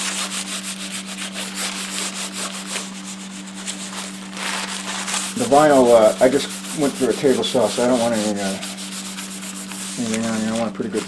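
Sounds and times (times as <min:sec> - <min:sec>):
cloth scrubbing vinyl board: 0:00.0 - 0:11.0
steady low hum: 0:00.0 - 0:11.0.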